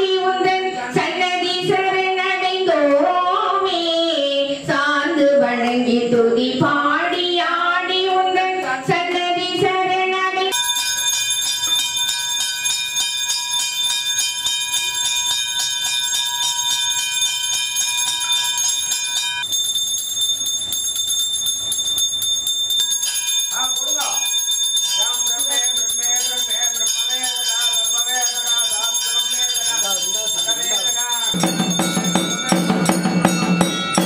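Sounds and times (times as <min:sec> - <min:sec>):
bell rung rapidly: 0:10.5 - 0:34.0.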